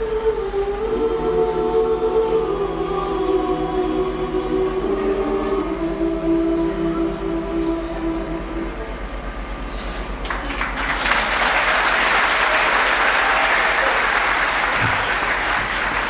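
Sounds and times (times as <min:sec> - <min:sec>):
choir singing sustained chords: 0:00.0 - 0:10.2
audience applause: 0:10.2 - 0:16.0.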